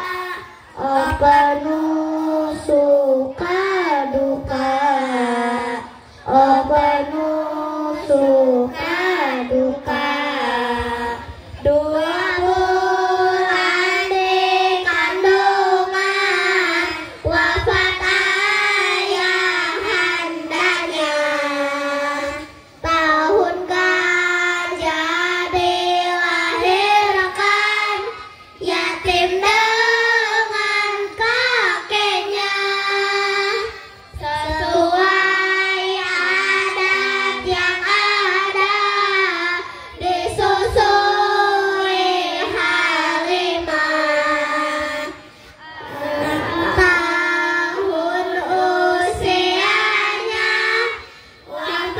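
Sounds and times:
children singing in unison: 0.0s - 51.9s.

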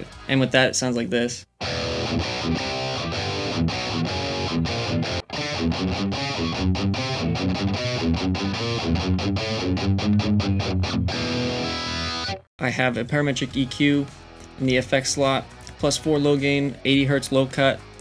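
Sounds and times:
distorted electric guitar riff: 1.6s - 12.4s.

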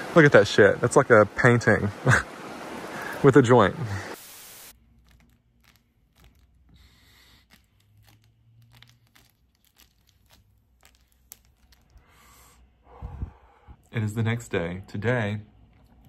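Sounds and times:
faint breathing: 2.8s - 4.2s, 6.6s - 7.8s, 11.9s - 13.9s
breathy hisses of exhaling smoke: 12.0s - 13.8s.

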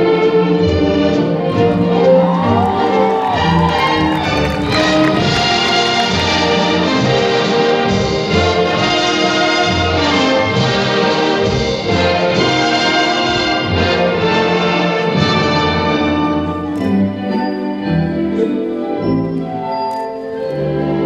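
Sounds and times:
orchestral music with brass: 0.0s - 21.0s.

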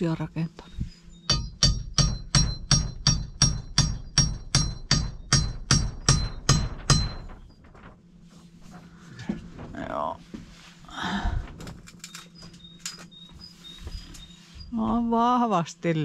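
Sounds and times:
hammer striking wood: 1.3s - 7.4s.

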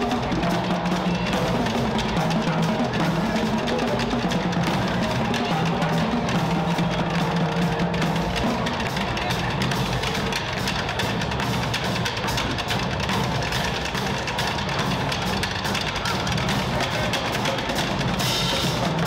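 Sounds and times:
cymbals: 0.0s - 19.0s
marching drumline cadence: 0.0s - 19.0s.

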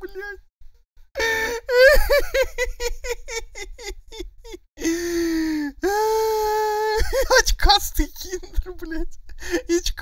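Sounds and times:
man laughing loudly: 1.7s - 4.6s.

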